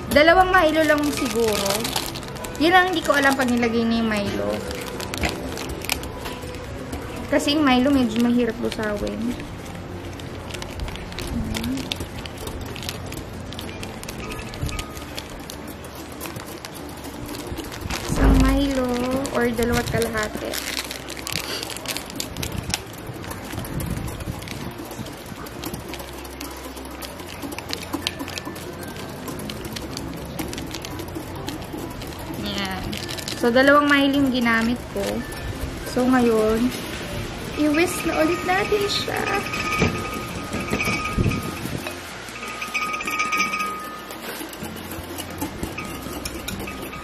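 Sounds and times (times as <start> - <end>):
powder pouring into a bowl: 0.0 - 6.2, 7.2 - 47.0
plastic sachets crinkling: 0.0 - 47.0.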